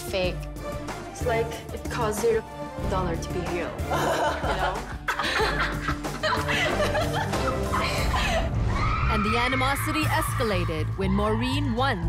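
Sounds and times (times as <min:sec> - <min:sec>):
background music with bass line: 0:00.0 - 0:12.0
women laughing: 0:03.9 - 0:08.6.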